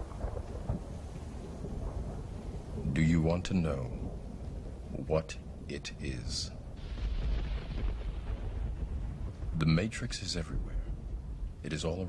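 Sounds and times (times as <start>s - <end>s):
low rumble of thunder: 0.0s - 12.0s
rain: 0.0s - 12.0s.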